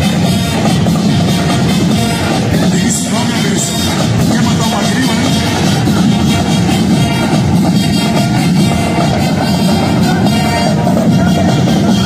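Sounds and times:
marching band playing: 0.0s - 12.0s
steady drum beat: 0.0s - 12.0s.

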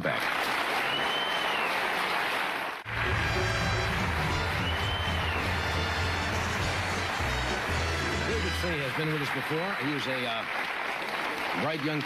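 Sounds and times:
audience applause: 0.0s - 12.0s
studio band playing: 2.9s - 10.1s.

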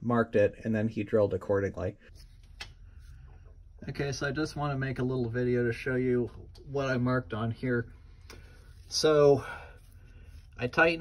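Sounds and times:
man speaking: 0.0s - 2.1s, 3.8s - 8.0s, 8.8s - 9.9s, 10.5s - 11.0s
low background hum: 0.0s - 11.0s.

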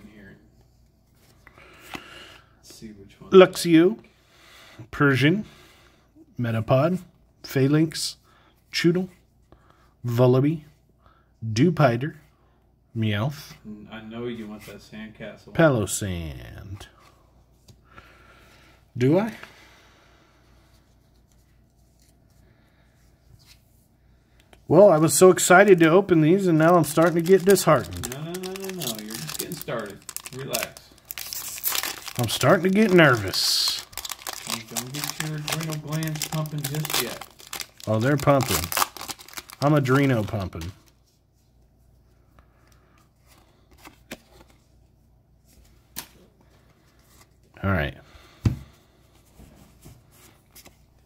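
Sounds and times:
hands rustling foil packs: 24.8s - 41.0s.

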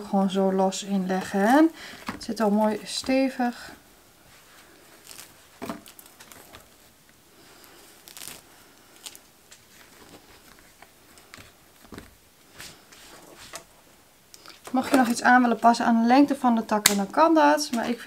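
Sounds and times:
twigs rustling and crackling: 0.8s - 3.5s, 4.2s - 13.7s.

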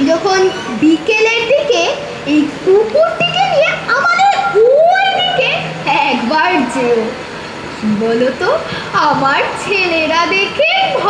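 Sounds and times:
girl speaking: 0.0s - 7.1s, 8.4s - 11.0s.

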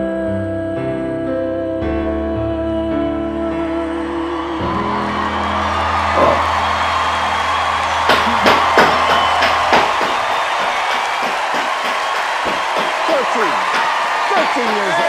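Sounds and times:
piano chord: 0.0s - 10.5s
audience cheering and applauding: 3.7s - 15.0s
sharp hand claps: 5.2s - 15.0s.

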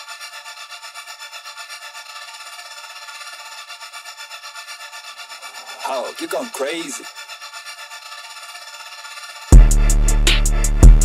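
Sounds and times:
person's voice: 5.6s - 7.1s
filtered trap melody loop: 5.7s - 7.0s, 9.5s - 11.0s.

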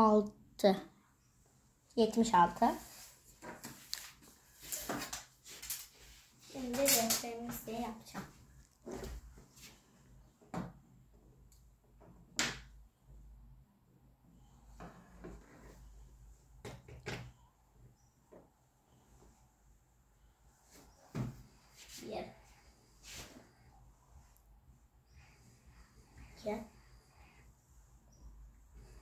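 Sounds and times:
child's voice: 0.0s - 0.9s, 2.0s - 2.9s, 6.5s - 8.3s, 22.0s - 22.4s, 26.4s - 26.8s.

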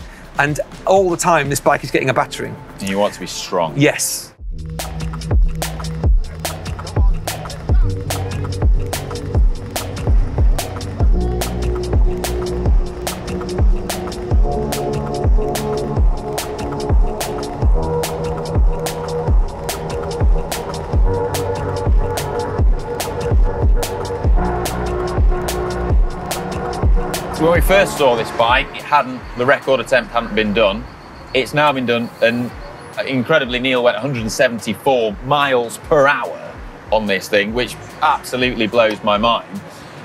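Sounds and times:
background music: 0.0s - 40.0s.

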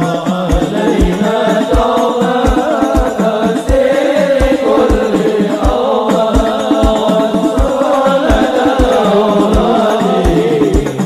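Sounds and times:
person chanting a devotional song: 0.0s - 11.0s
steady low drum beat: 0.0s - 11.0s.

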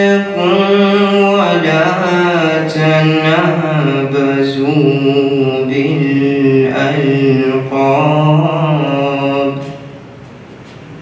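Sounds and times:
man chanting recitation: 0.0s - 10.0s.

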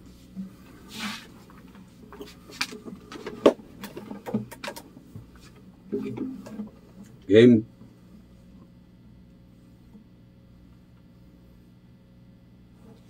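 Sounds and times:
guitar handling clicks and knocks: 2.6s - 7.2s.

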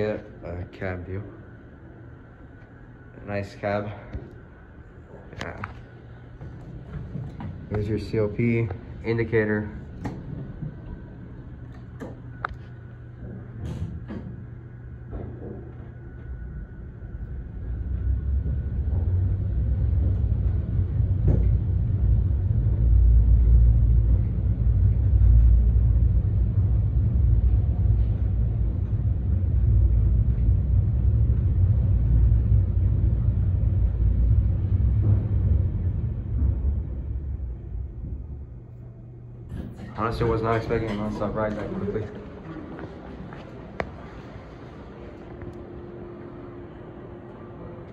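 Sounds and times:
elevator ride rumble: 0.0s - 47.9s.

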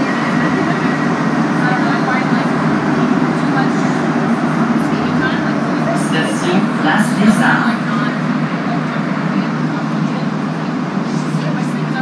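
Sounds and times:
passengers talking: 0.0s - 12.0s
train running rumble: 0.0s - 12.0s.

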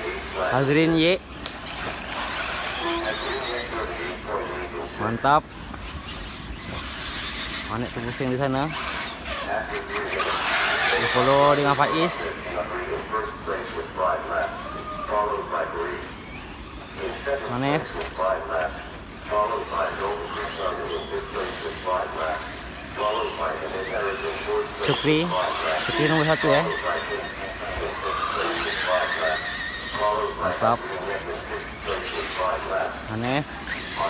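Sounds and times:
people talking: 0.0s - 1.2s, 2.7s - 5.5s, 7.7s - 16.1s, 16.9s - 34.0s
rc buggy engines whining: 0.0s - 34.0s.

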